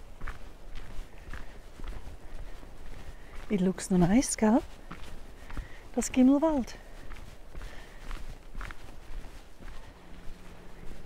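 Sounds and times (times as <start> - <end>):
soft footsteps on path: 0.0 - 11.0
faint low hum: 6.7 - 11.0.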